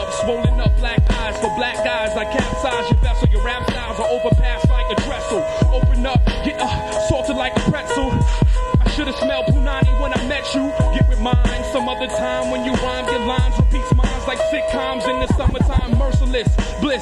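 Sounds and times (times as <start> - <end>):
hip hop beat with heavy kick drum: 0.0 - 17.0
person rapping fast: 0.0 - 17.0.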